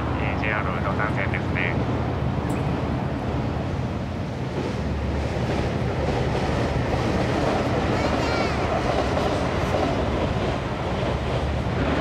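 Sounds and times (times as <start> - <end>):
train rumbling past: 0.0 - 12.0.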